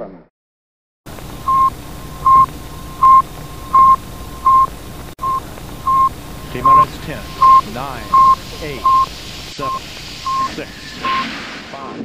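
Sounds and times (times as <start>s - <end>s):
radio static hiss: 1.1s - 12.0s
short electronic beeps: 1.4s - 11.4s.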